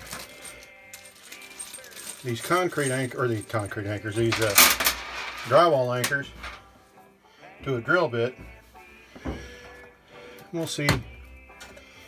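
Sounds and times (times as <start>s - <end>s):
small hardware clinking and rattling: 0.0s - 6.7s.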